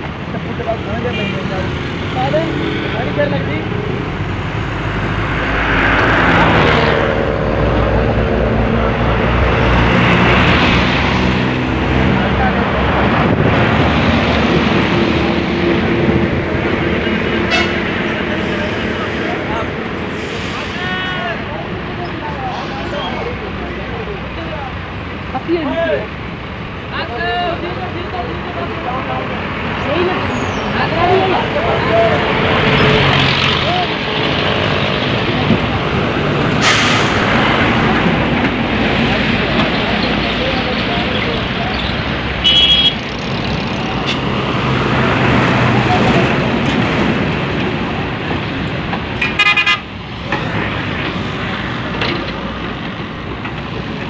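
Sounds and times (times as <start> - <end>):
truck engines passing: 0.0 - 54.0
tyre and road noise: 0.0 - 54.0.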